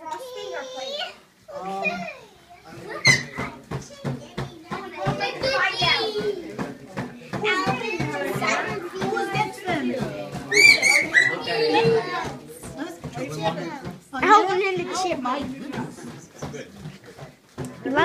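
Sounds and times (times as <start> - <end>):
children and adults talking: 0.0 - 18.0
child squealing: 10.5 - 11.4.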